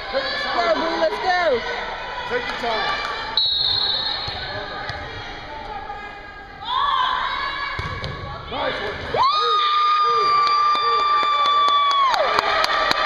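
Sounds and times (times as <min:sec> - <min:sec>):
spectators cheering and shouting: 0:00.0 - 0:13.0
long high-pitched cheer: 0:09.2 - 0:13.0.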